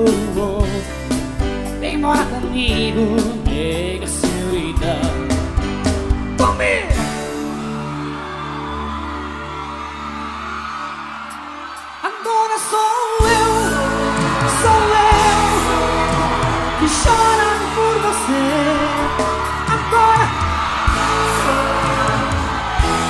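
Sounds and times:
person singing: 0.0s - 5.5s, 12.0s - 23.0s
bass and drums: 0.0s - 7.7s, 13.2s - 23.0s.

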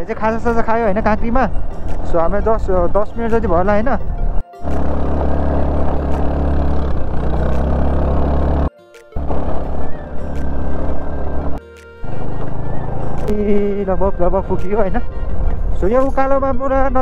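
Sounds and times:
music: 0.0s - 17.0s
motorcycle engine running: 4.6s - 11.6s.

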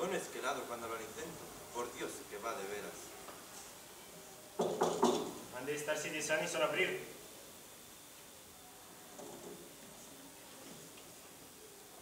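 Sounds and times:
faint indistinct voices: 0.0s - 5.6s, 7.0s - 12.0s.

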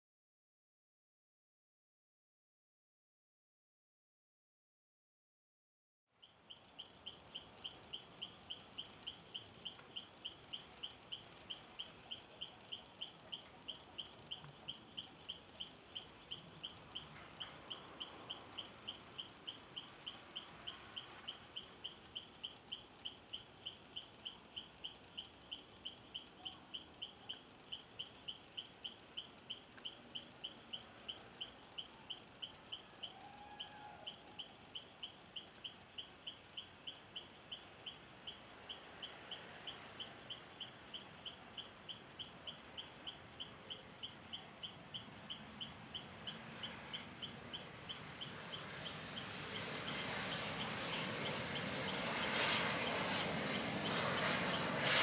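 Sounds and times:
insects whining and chirping: 6.2s - 55.0s
jet engine noise: 34.1s - 55.0s.

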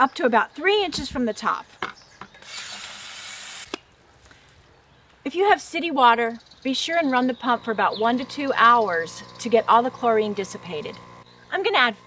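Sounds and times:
hose spraying into bucket: 2.4s - 3.8s.

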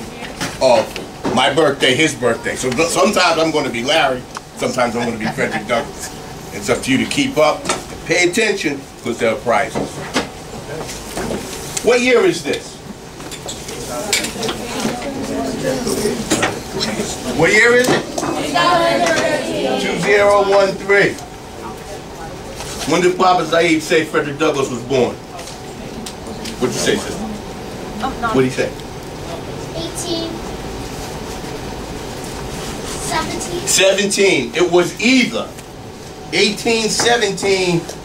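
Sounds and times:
low room rumble: 0.0s - 38.0s.

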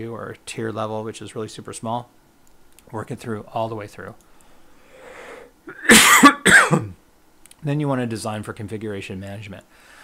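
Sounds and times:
faint breath in: 4.3s - 5.6s, 9.7s - 10.0s
man coughing: 5.7s - 7.0s.

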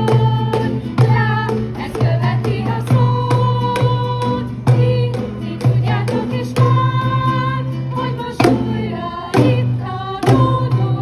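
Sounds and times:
children's choir singing: 1.0s - 11.0s.

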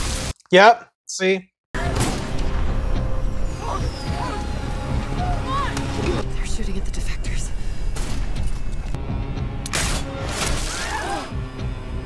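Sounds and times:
low rumble: 1.8s - 9.6s
tense music score: 1.8s - 12.0s.

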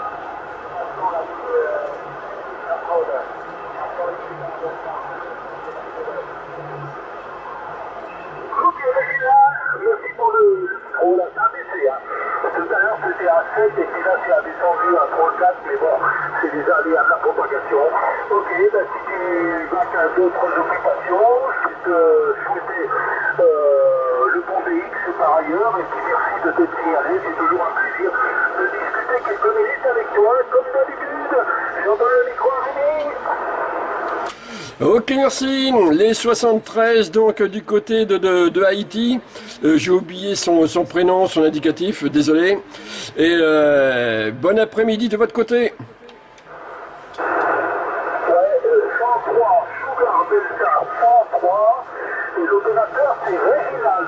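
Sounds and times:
radio hiss: 0.0s - 54.0s
narrow-band radio voice: 8.5s - 33.6s, 47.2s - 54.0s.

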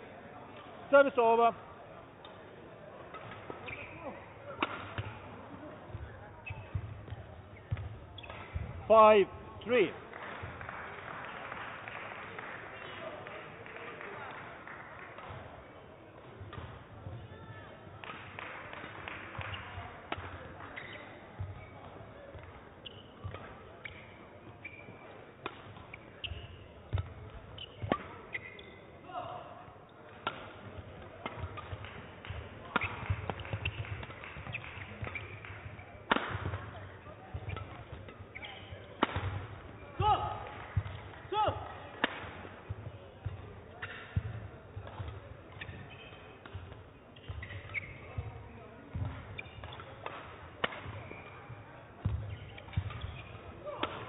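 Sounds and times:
shoes squeaking on court floor: 2.1s - 10.7s, 15.2s - 54.0s
rackets striking shuttlecock: 3.0s - 9.8s, 16.2s - 17.2s, 18.0s - 29.0s, 30.0s - 54.0s.

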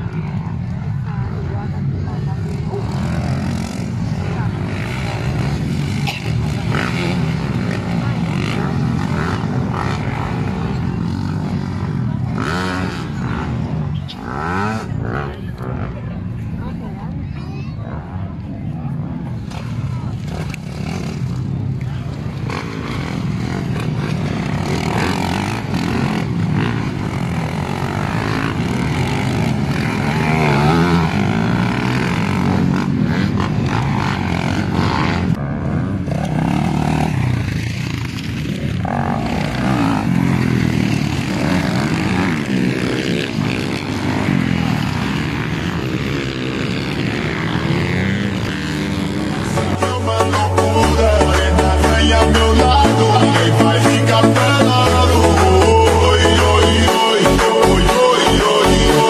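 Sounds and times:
dirt bike engines revving: 0.0s - 59.0s.

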